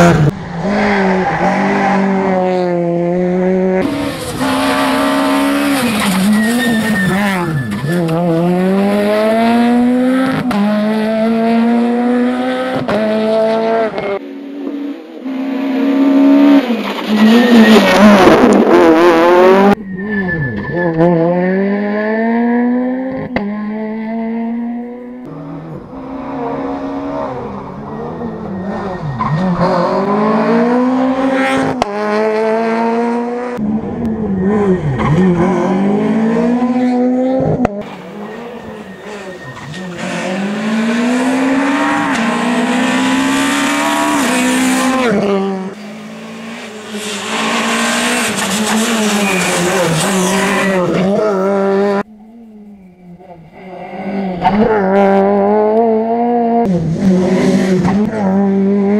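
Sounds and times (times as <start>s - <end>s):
rally car engine revving: 0.0s - 58.9s.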